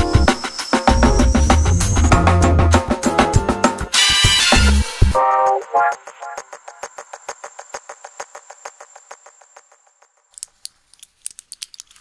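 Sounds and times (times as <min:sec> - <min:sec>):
thin high whine: 0:00.6 - 0:10.3.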